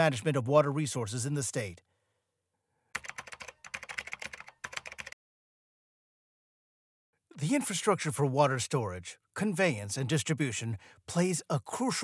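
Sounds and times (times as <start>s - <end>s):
computer keyboard typing: 2.9s - 5.2s.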